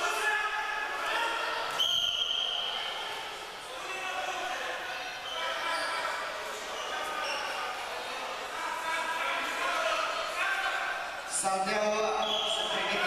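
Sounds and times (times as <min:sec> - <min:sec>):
many voices chattering: 0:00.0 - 0:13.0
whistle blast: 0:01.8 - 0:02.8, 0:12.2 - 0:12.8.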